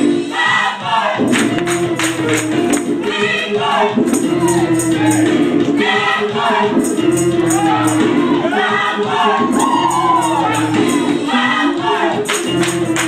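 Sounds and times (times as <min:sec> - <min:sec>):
gospel group singing: 0:00.0 - 0:13.0
high percussion ticking: 0:01.2 - 0:03.2, 0:04.0 - 0:05.9, 0:06.8 - 0:08.3, 0:09.5 - 0:11.2, 0:12.3 - 0:13.0
band accompaniment: 0:01.2 - 0:13.0.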